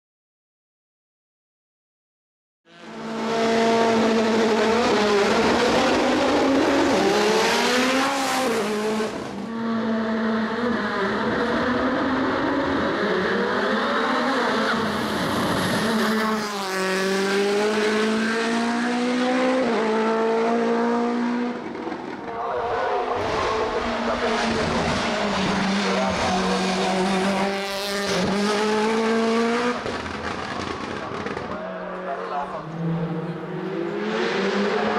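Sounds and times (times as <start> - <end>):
racing car engine at full throttle: 2.7 - 34.9.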